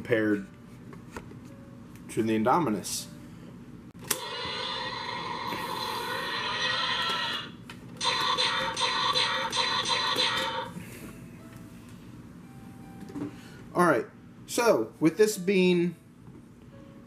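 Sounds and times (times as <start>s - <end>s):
electronic dinosaur roar from toy speaker: 4.1s - 10.8s.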